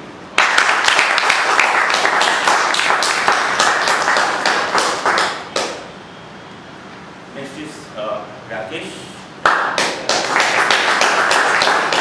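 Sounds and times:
audience clapping: 0:00.3 - 0:05.9, 0:09.4 - 0:12.0.

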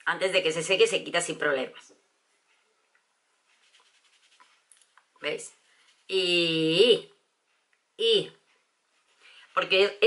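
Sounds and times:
pad rubbing on skin: 0:03.4 - 0:04.9, 0:05.5 - 0:06.5.

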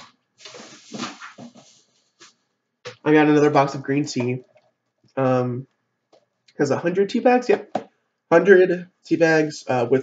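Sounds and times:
shopping bags rustling: 0:00.0 - 0:02.3.

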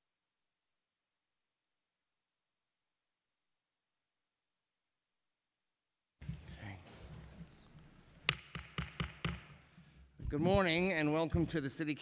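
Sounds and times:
sharp knocks on hard surface: 0:08.2 - 0:09.6.

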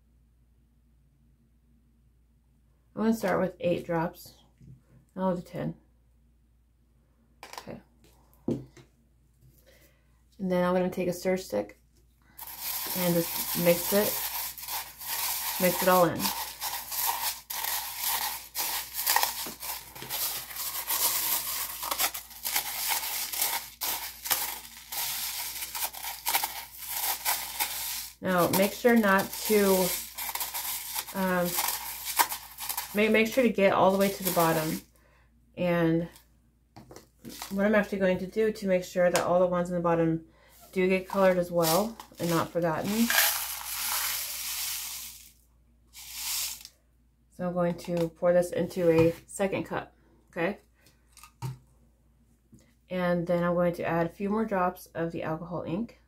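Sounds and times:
stick stirring crushed glass: 0:12.4 - 0:34.8, 0:41.6 - 0:45.3, 0:46.0 - 0:46.7.

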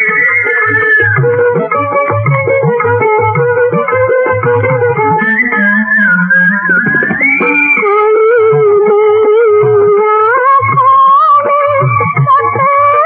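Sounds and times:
plucked strings melody: 0:00.0 - 0:13.0.

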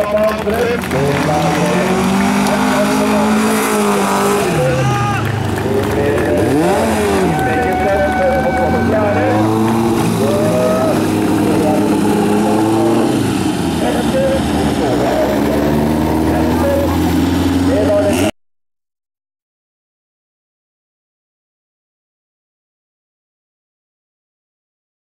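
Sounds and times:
low engine drone: 0:00.0 - 0:18.3
race car engines revving: 0:00.0 - 0:18.3.

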